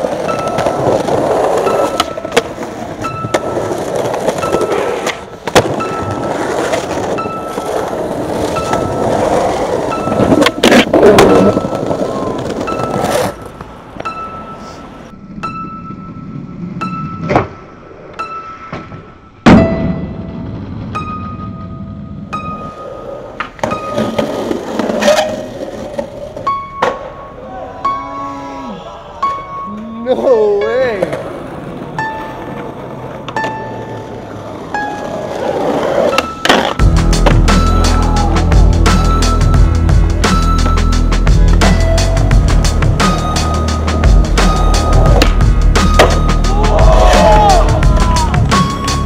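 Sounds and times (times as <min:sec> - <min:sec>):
skateboard scraping stone ledge: 0:00.0 - 0:13.9
skateboard clacking on stone: 0:00.0 - 0:14.2, 0:45.0 - 0:46.3
skateboard clacks: 0:00.0 - 0:15.0, 0:30.1 - 0:39.5, 0:40.2 - 0:49.0
skateboard wheels rolling on concrete: 0:00.0 - 0:49.0.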